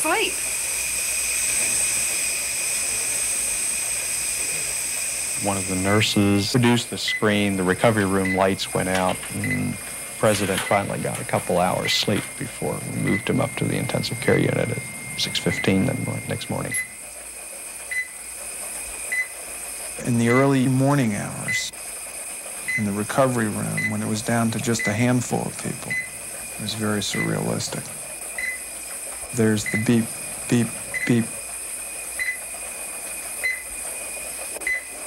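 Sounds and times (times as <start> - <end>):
steady hiss: 0.0 - 35.0
heart monitor beeps: 5.5 - 17.1, 17.9 - 18.2, 19.1 - 19.4, 20.1 - 20.7, 22.7 - 26.2, 27.1 - 27.6, 28.4 - 28.7, 29.5 - 31.4, 32.2 - 32.5, 33.4 - 33.7, 34.6 - 35.0.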